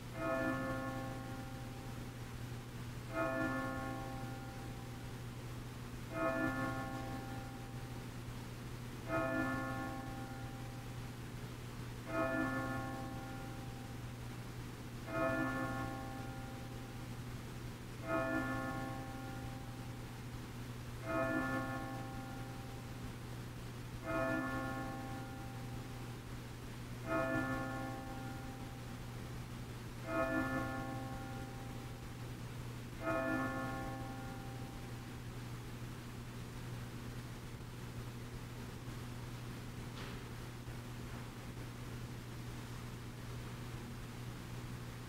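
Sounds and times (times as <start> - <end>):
steady low hum: 0.0 - 45.0
church bell tolling: 0.1 - 1.8, 3.1 - 4.8, 6.1 - 7.8, 9.0 - 10.6, 12.1 - 13.8, 15.1 - 16.8, 18.0 - 19.8, 21.0 - 22.7, 24.0 - 25.8, 27.0 - 28.7, 30.1 - 31.8, 33.0 - 34.9.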